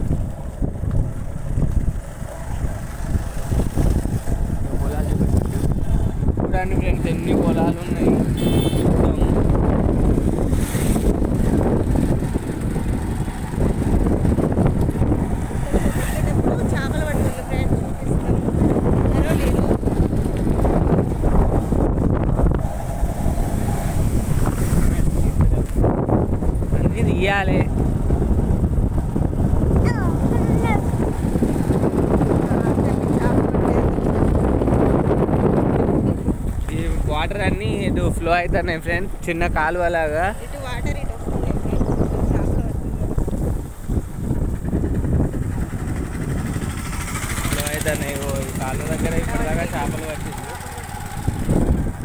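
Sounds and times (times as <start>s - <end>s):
motorcycle running: 0.0s - 52.0s
road noise: 0.0s - 52.0s
wind buffeting microphone: 0.0s - 52.0s.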